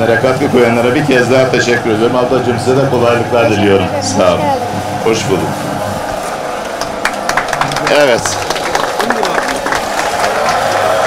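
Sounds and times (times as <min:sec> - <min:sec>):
grape crushing machine humming: 0:00.0 - 0:11.0.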